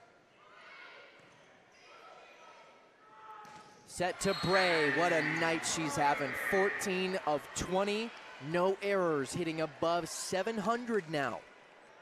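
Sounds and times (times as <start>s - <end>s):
faint crowd murmur: 3.9s - 10.3s
distant voices: 4.2s - 7.8s.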